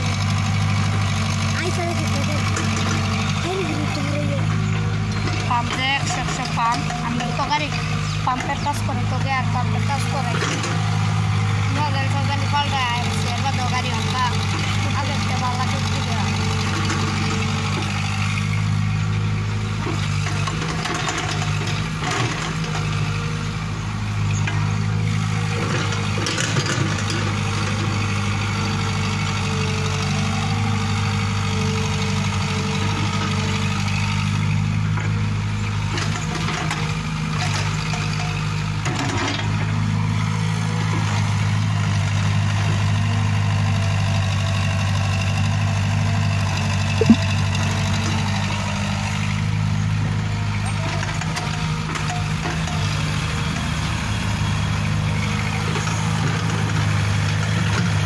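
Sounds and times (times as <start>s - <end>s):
excavator diesel engine: 0.0s - 58.0s.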